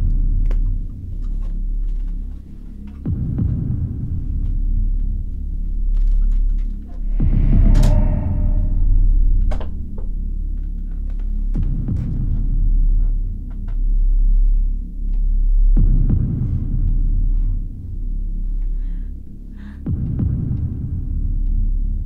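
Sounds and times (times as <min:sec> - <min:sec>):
low throbbing horror drone: 0:00.0 - 0:22.0
deep descending boom: 0:07.0 - 0:10.5.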